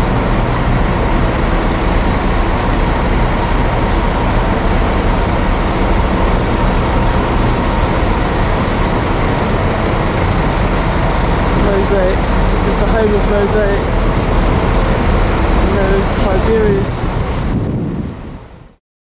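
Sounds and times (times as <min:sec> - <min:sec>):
coach engines idling: 0:00.0 - 0:18.7.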